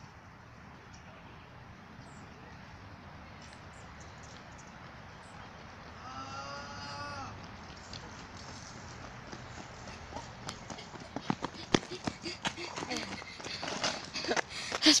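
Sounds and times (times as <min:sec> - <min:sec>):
children running on asphalt: 0:06.6 - 0:15.0.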